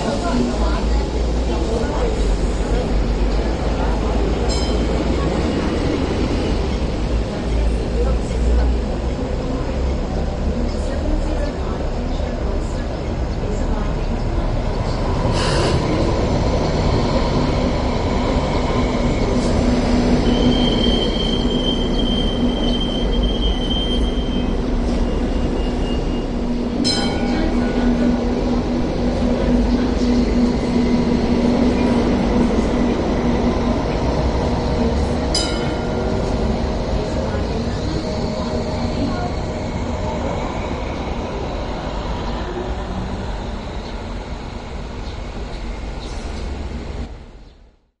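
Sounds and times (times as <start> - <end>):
light rail train rolling: 0.0 - 47.7
high wheel squeal: 20.2 - 27.0.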